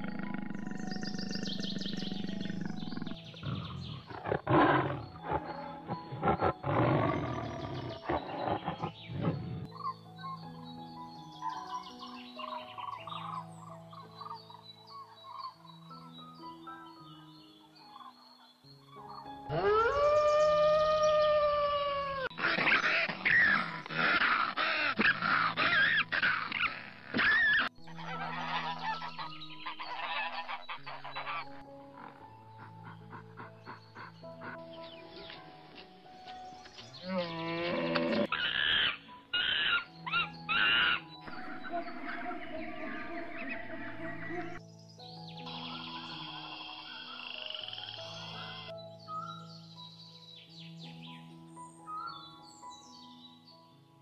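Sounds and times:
yelping animal calls: 0:00.0 - 0:09.7, 0:19.5 - 0:34.7, 0:37.0 - 0:44.6
frog croaking: 0:00.0 - 0:09.9, 0:37.1 - 0:44.6
faint background music: 0:00.0 - 0:54.0
wolf howl: 0:19.5 - 0:29.2, 0:37.0 - 0:44.6.

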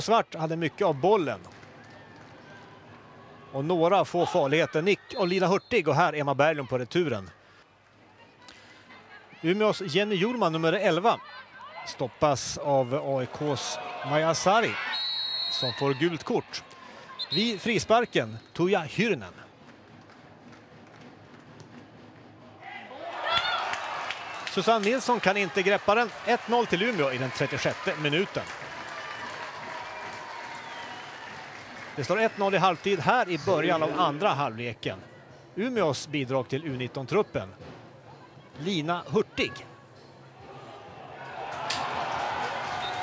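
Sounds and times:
crowd noise: 0:00.0 - 0:43.0
crowd cheering: 0:00.8 - 0:05.4, 0:22.6 - 0:34.3, 0:40.4 - 0:43.0.

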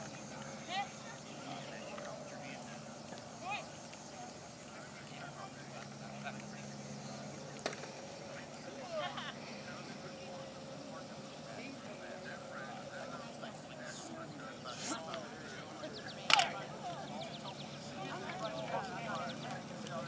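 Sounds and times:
faint indistinct voices: 0:00.0 - 0:20.0
open-air background noise: 0:00.0 - 0:20.0.

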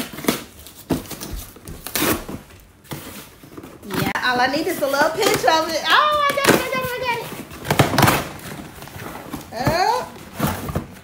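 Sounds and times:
packaging rustling: 0:00.0 - 0:11.0.

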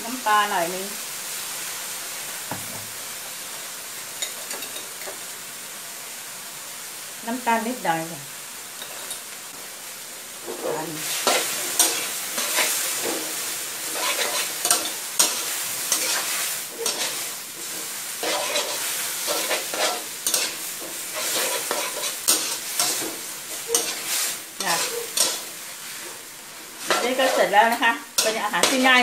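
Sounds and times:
oil sizzling in a wok: 0:00.0 - 0:29.0
metal spatula scraping a wok: 0:10.4 - 0:29.0.

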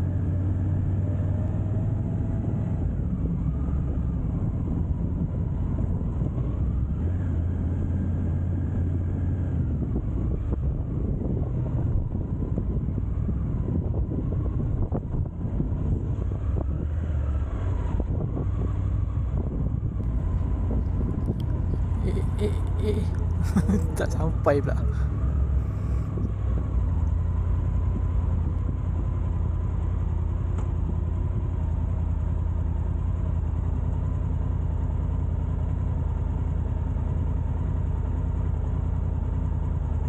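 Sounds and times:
motorcycle engine low drone: 0:00.0 - 0:40.0.

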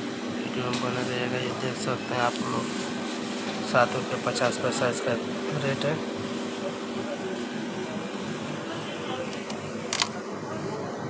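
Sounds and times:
fridge hum: 0:00.0 - 0:11.0.

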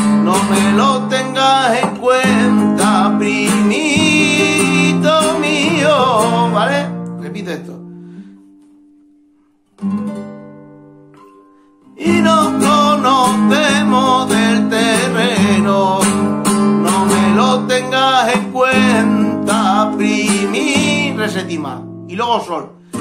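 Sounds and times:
man singing: 0:00.0 - 0:07.1, 0:12.0 - 0:22.3
classical guitar strumming: 0:00.0 - 0:23.0.

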